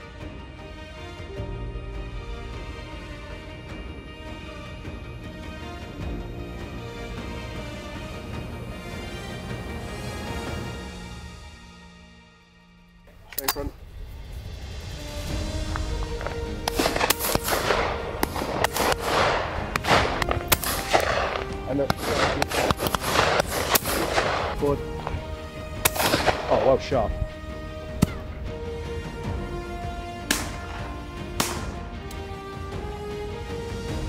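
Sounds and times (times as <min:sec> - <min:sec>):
background music: 0:00.0 - 0:34.0
shotgun shots: 0:16.2 - 0:26.9, 0:30.2 - 0:31.9.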